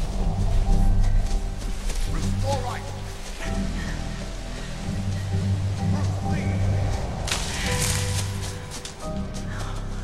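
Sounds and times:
film score music: 0:00.0 - 0:10.0
branches swishing through brush: 0:05.0 - 0:09.8.

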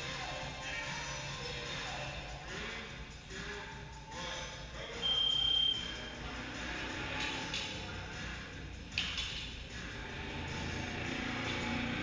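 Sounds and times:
long high timer beep: 0:05.0 - 0:06.0.

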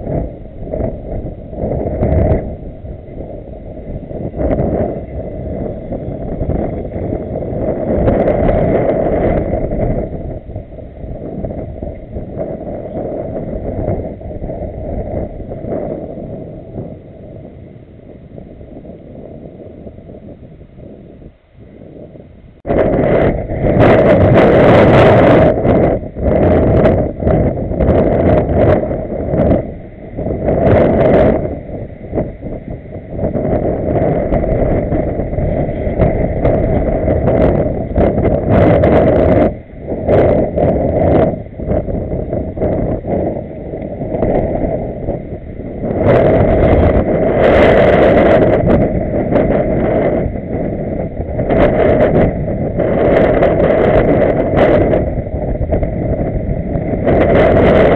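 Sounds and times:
wind buffeting microphone: 0:00.0 - 0:57.9.

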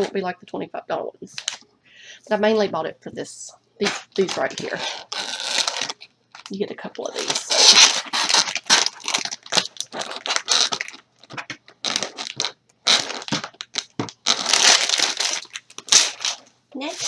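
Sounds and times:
plastic packaging crinkling: 0:03.8 - 0:17.0.

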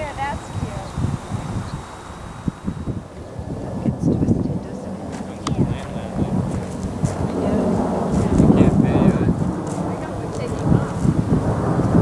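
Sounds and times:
people's voices: 0:00.0 - 0:11.3
wind buffeting microphone: 0:00.0 - 0:12.0.

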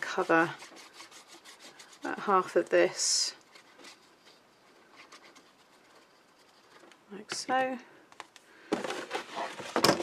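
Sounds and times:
paper and card rustling: 0:00.0 - 0:07.6, 0:08.7 - 0:10.0.

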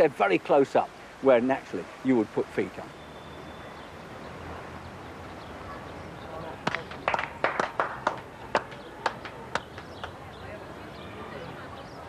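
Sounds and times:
slow hand claps: 0:06.6 - 0:10.2.

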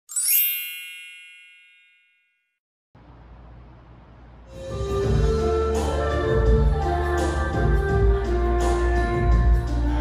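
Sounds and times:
shimmering metallic chime: 0:00.1 - 0:02.3.

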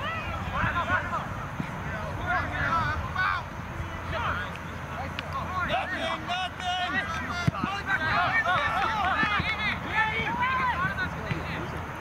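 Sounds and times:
voices shouting and calling out: 0:00.0 - 0:12.0.

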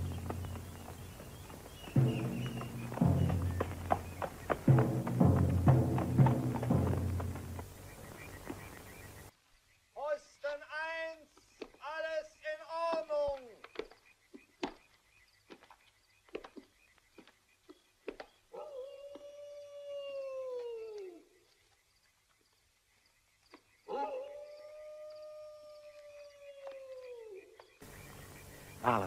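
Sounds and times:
wild canines howling: 0:18.5 - 0:21.3, 0:23.9 - 0:28.8.

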